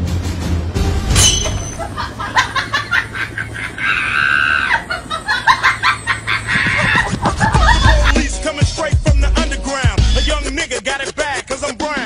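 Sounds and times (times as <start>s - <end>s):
shrill cries: 3.0s - 8.1s
hip-hop beat with deep bass: 7.2s - 12.0s.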